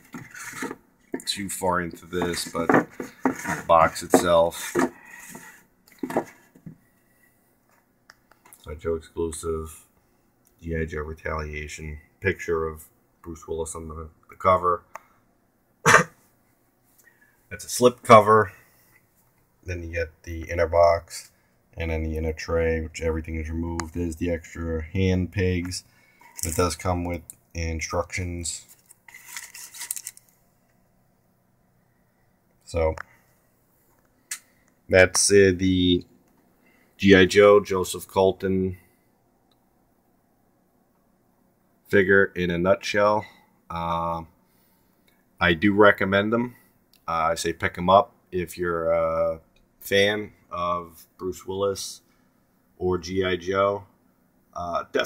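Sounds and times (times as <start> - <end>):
light knocks and rubs: 0.0 - 1.3, 2.2 - 6.8
plastic packaging crinkling: 28.7 - 30.4.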